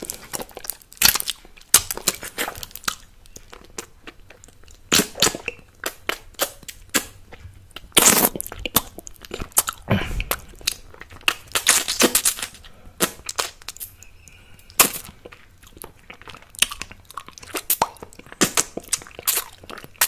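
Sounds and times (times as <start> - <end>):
wet mouth sucking and licking: 0.0 - 20.0.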